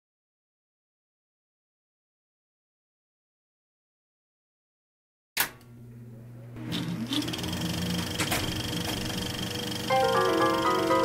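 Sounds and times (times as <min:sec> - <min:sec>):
small motor whirring: 0:06.7 - 0:09.9.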